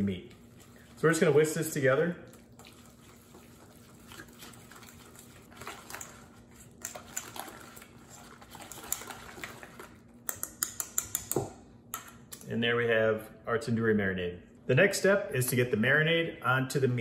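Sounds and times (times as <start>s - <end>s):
whisk swishing in thick liquid: 0.0s - 10.0s
whisk wires clicking on metal bowl: 10.2s - 12.1s.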